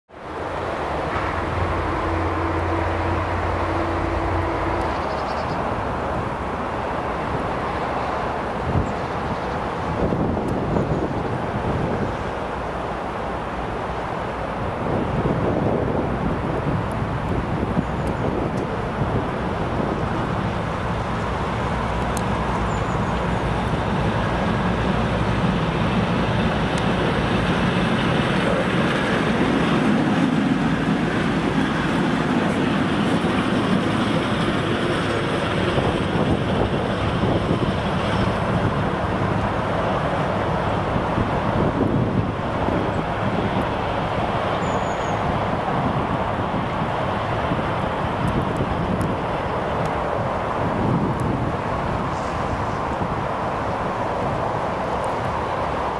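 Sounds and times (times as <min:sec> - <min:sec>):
electric locomotive passing: 0:00.1 - 0:55.9.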